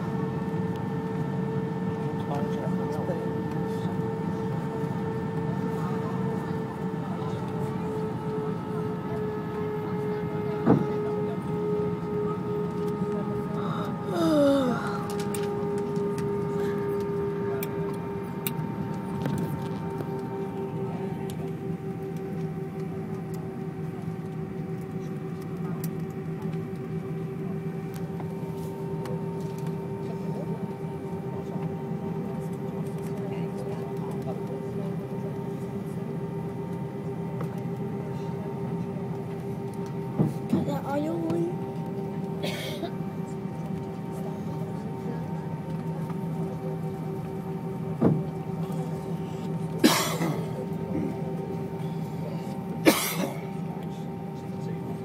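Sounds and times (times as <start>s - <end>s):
jet engines whining: 0.0s - 55.0s
low cabin rumble: 0.0s - 55.0s.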